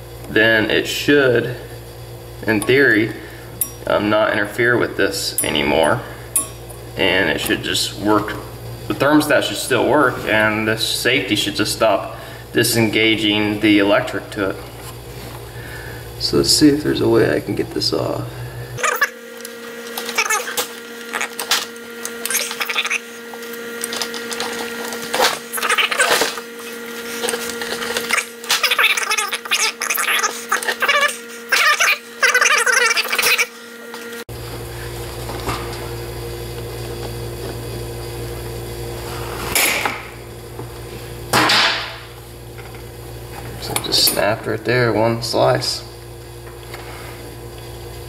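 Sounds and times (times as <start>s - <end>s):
steady hum: 0.0s - 48.0s.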